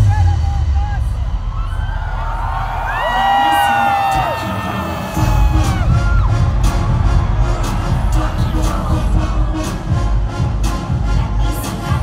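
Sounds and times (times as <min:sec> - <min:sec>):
heavy bass beat: 0:00.0 - 0:12.0
live concert music: 0:00.0 - 0:12.0
audience cheering and whooping: 0:01.3 - 0:10.3.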